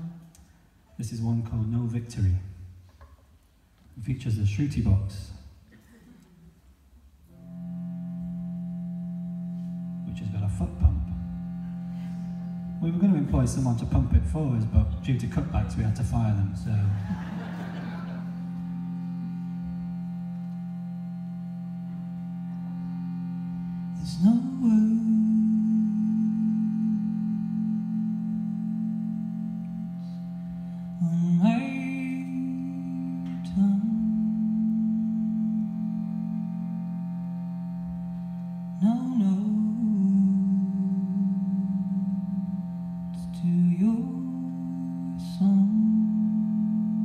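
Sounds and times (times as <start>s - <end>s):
shruti box reed drone: 7.3s - 47.0s
woman singing long notes: 22.8s - 47.0s.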